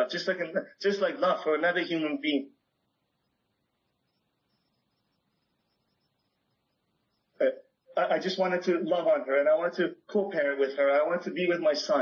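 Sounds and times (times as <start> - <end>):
man speaking: 0.0 - 2.6, 7.4 - 12.0.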